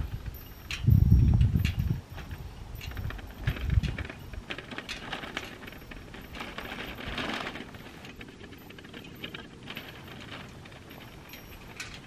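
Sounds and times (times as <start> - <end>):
plastic cart rattling over dirt: 0.0 - 12.0.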